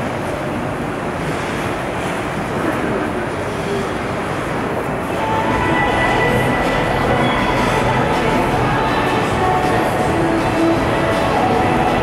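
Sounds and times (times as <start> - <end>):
ice rink rumble: 0.0 - 12.0.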